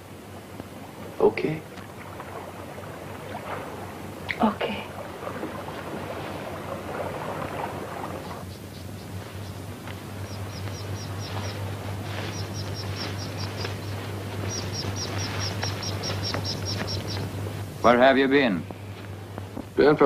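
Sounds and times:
crickets chirping: 0:00.0 - 0:20.0
steady low hum: 0:00.0 - 0:20.0.

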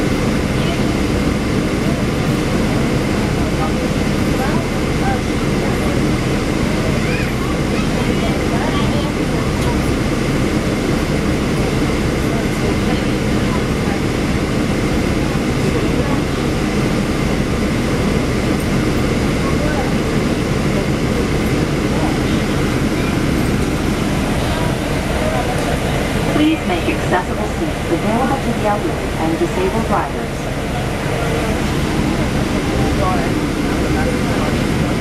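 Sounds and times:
bus engine idling: 0:00.0 - 0:35.0.

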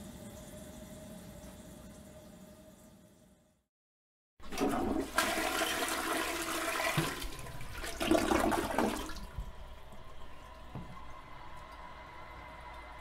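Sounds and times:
running water: 0:04.4 - 0:11.9
toilet flushing: 0:04.4 - 0:13.0.

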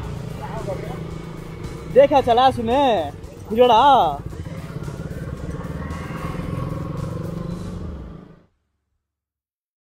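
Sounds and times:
music: 0:00.0 - 0:08.3
motorcycle engine running: 0:00.0 - 0:08.5.

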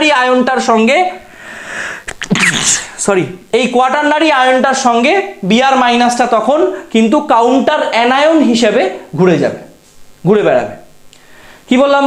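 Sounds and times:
breath in: 0:01.3 - 0:02.1, 0:11.2 - 0:11.7
man sneezing: 0:02.0 - 0:03.1.

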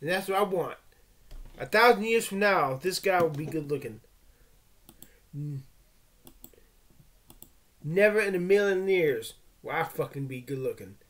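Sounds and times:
computer mouse clicking: 0:04.9 - 0:05.2, 0:06.2 - 0:06.6, 0:07.3 - 0:07.6.

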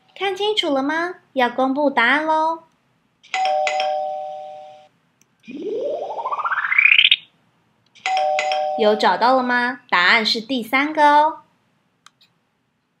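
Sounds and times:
ding-dong chime: 0:03.4 - 0:04.8, 0:08.1 - 0:09.1
rising fluttering whistle sweep: 0:05.5 - 0:07.2.

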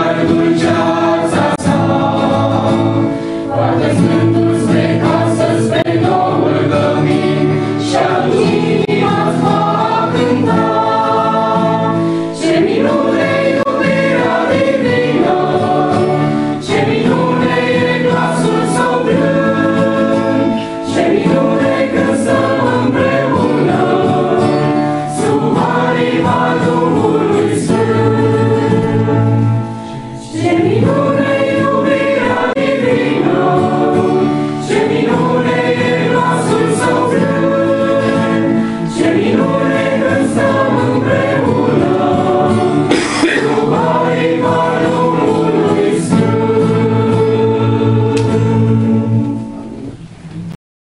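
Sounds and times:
choir singing a hymn: 0:00.0 - 0:49.9.

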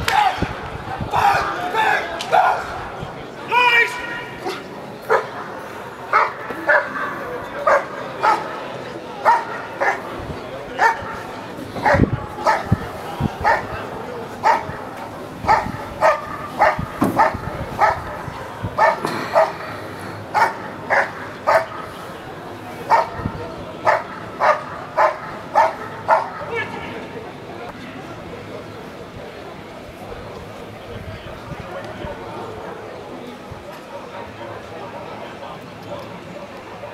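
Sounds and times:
dog barking: 0:05.1 - 0:05.3, 0:06.1 - 0:07.0, 0:07.6 - 0:08.5, 0:09.2 - 0:10.0, 0:10.8 - 0:11.2, 0:11.8 - 0:12.8, 0:13.4 - 0:13.8, 0:14.4 - 0:14.8, 0:15.5 - 0:18.2, 0:18.8 - 0:19.7, 0:20.4 - 0:21.8, 0:22.9 - 0:26.5.

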